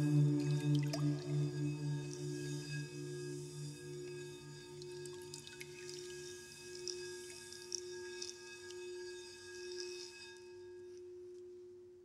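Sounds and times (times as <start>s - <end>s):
ambient meditation music: 0.0s - 11.9s.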